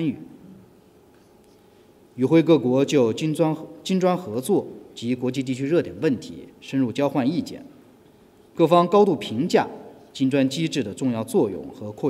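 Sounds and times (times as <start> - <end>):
man speaking: 0.0 - 0.3, 2.2 - 7.8, 8.6 - 12.0.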